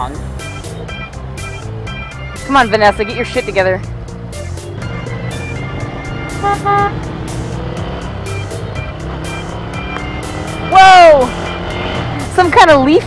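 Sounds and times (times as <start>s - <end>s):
background music with beat: 0.0s - 12.4s
motorcycle engines running: 0.0s - 13.0s.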